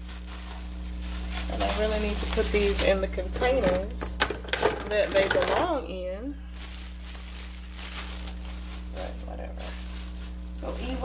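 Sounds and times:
low electrical hum: 0:00.0 - 0:11.0
plastic bag crinkling: 0:00.0 - 0:11.0.

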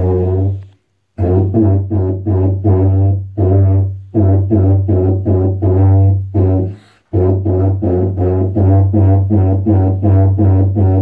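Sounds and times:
tuba playing short low notes: 0:00.0 - 0:11.0.

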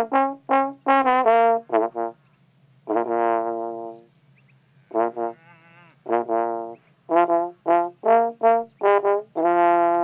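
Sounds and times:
trombone melody: 0:00.0 - 0:02.2, 0:02.8 - 0:04.1, 0:04.8 - 0:10.0.

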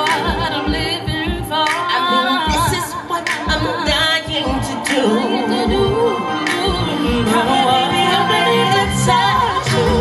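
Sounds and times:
backing track with steady beat: 0:00.0 - 0:10.0
woman singing with vibrato: 0:00.0 - 0:10.0.

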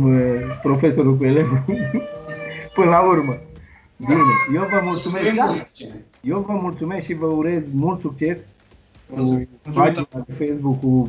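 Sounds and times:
man speaking over call: 0:04.0 - 0:08.4, 0:09.1 - 0:11.0.

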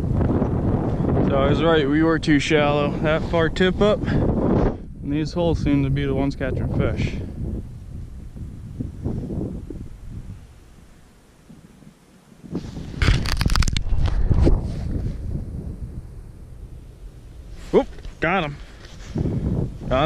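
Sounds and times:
wind buffeting microphone: 0:00.0 - 0:11.8, 0:12.4 - 0:20.0
clothing rustling and scraping: 0:17.5 - 0:19.4.

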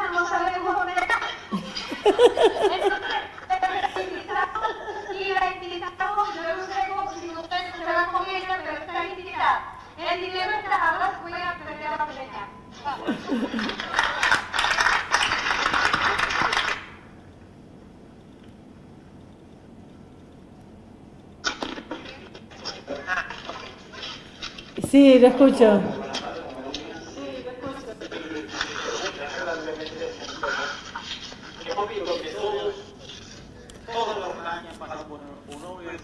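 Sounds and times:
audience applauding: 0:13.3 - 0:17.0
indistinct speech from television: 0:24.8 - 0:36.0.

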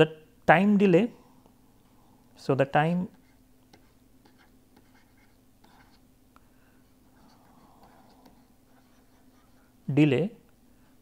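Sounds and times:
faint steady hum: 0:00.0 - 0:11.0
stylus scratching on pen tablet: 0:03.1 - 0:06.1, 0:06.9 - 0:09.9.

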